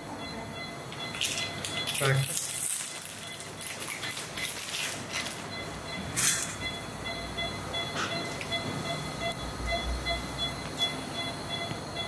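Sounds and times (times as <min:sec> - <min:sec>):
equipment hum: 0:00.0 - 0:12.0
patient monitor beeping: 0:00.0 - 0:12.0.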